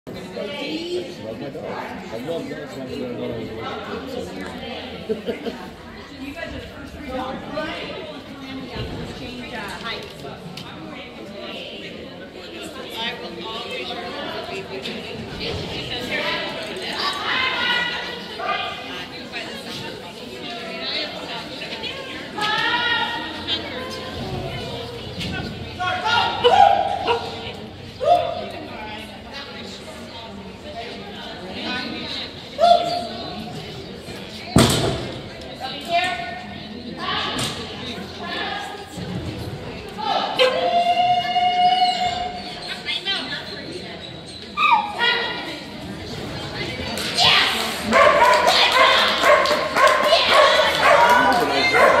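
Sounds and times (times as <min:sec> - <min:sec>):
dog barking excitedly: 0:47.9 - 0:52.0.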